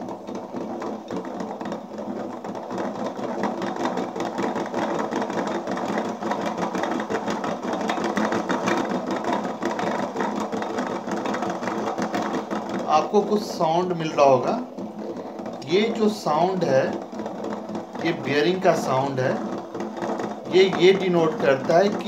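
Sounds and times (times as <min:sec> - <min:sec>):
crankshaft bearings rattling grind: 0:00.0 - 0:22.0.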